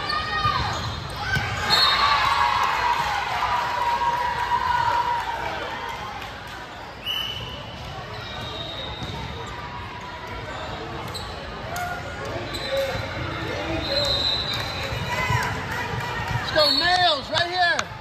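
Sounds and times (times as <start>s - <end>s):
shoe squeaks on floor: 0.0s - 2.0s, 7.1s - 9.6s, 10.5s - 11.5s, 12.4s - 14.6s.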